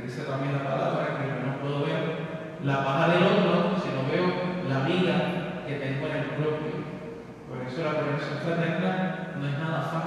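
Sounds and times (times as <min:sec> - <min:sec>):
man preaching: 0:00.0 - 0:10.0.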